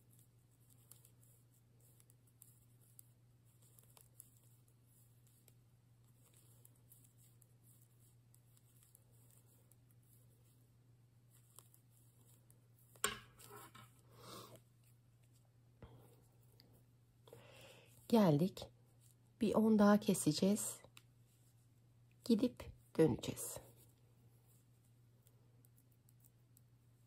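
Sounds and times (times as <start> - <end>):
yarn and fabric rustling: 0.0 - 17.0, 17.9 - 27.0
low steady hum: 0.0 - 27.0.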